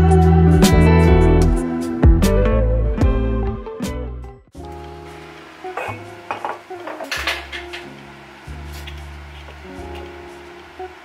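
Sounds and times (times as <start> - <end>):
glass and utensils clinking: 5.7 - 8.0.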